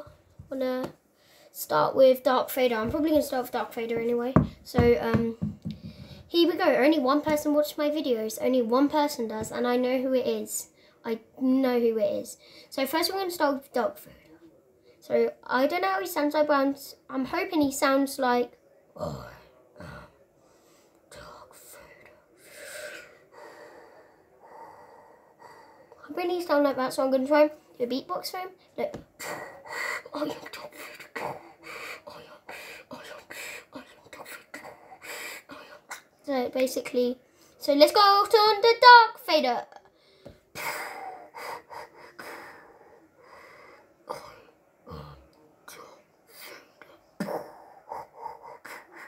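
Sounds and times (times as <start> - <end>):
boy breathing with breathy hisses: 22.3 - 26.1, 29.2 - 35.9, 40.0 - 44.0, 47.6 - 49.0.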